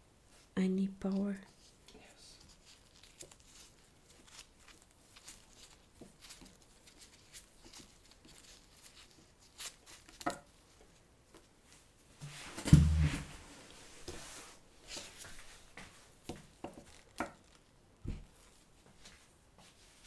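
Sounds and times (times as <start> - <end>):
gloved hands rustling a cord: 1.0 - 20.0
chair pushed back thump: 12.2 - 13.4.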